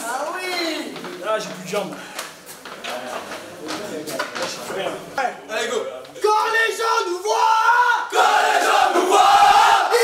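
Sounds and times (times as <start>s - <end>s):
men shouting a chant in unison: 6.7s - 10.0s.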